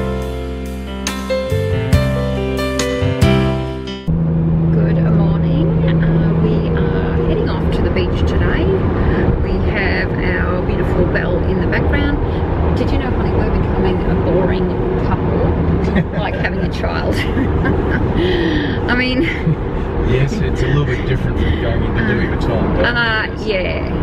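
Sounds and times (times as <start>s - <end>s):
car road and engine rumble: 4.1s - 24.0s
low hum: 4.1s - 24.0s.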